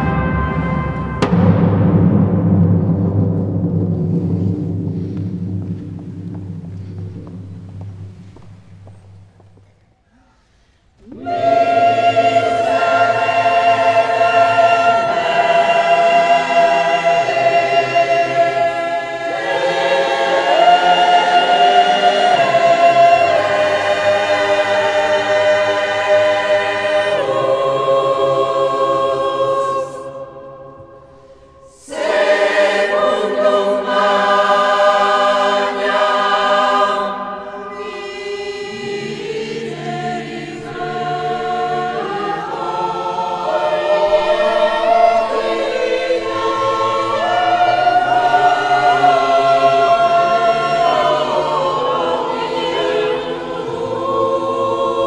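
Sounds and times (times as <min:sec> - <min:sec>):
choir singing sustained chords: 0:00.0 - 0:09.7, 0:11.0 - 0:55.0.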